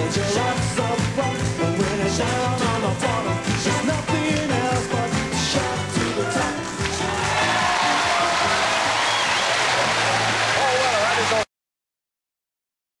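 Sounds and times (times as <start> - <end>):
music: 0.0 - 11.5
audience cheering and applauding: 3.1 - 11.5.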